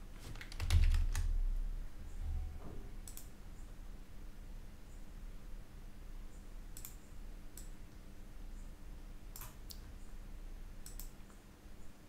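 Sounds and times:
faint low hum: 0.0s - 12.0s
computer mouse clicking: 3.0s - 3.3s, 6.8s - 7.8s, 9.3s - 9.8s, 10.8s - 11.4s.

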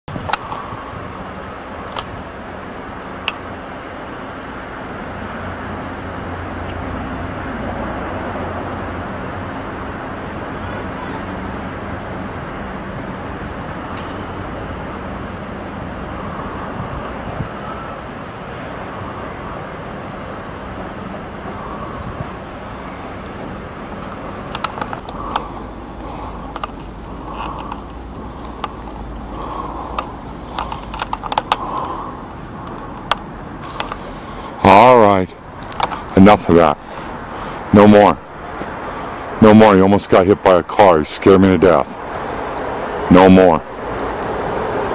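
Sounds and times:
outdoor background noise: 0.0s - 44.9s
vehicle engine humming: 0.0s - 44.9s
sharp clicks: 24.0s - 34.2s, 35.6s - 36.2s.

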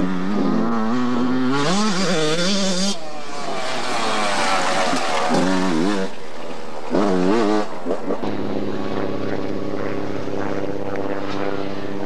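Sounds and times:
dirt bike engine revving: 0.0s - 12.0s.

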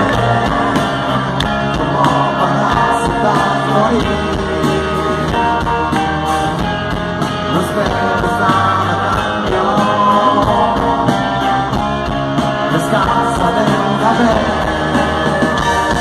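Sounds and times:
person singing: 0.0s - 6.2s, 7.4s - 11.8s, 12.7s - 16.0s
drums: 0.0s - 16.0s
electric guitar: 0.0s - 16.0s
keyboards: 0.0s - 16.0s.

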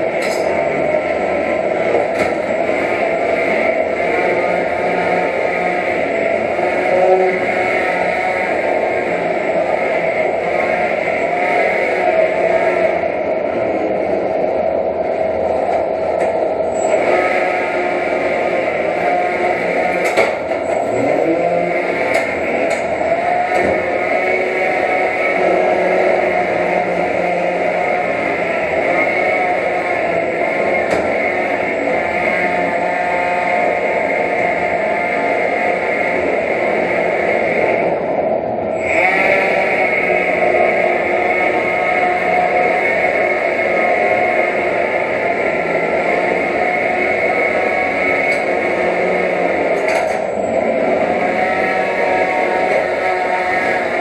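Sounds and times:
whine of small electric motors: 0.0s - 54.0s.

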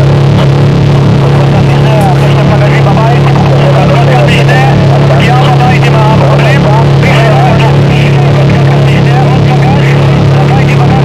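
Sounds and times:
distorted noise drone: 0.0s - 11.0s
warbling voice-like layer: 0.0s - 11.0s.

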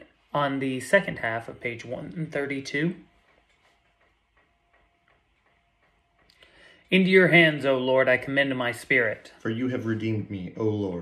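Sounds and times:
faint regular ticking: 0.0s - 11.0s.

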